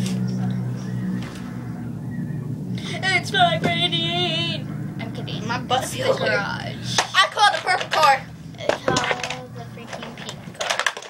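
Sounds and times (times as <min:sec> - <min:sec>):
plastic toys clicking and clattering: 0:07.3 - 0:11.0.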